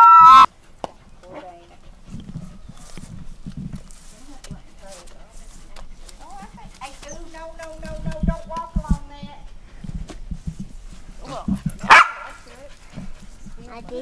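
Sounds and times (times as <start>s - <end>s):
dog barking: 11.8s - 12.4s.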